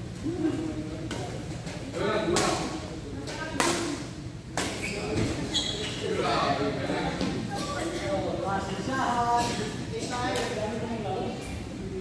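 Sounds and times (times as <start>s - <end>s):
racket hitting shuttlecock: 3.6s - 4.0s, 4.6s - 4.8s.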